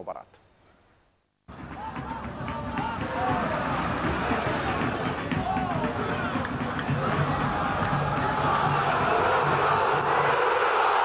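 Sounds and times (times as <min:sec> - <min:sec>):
stadium crowd cheering: 0:01.5 - 0:11.0.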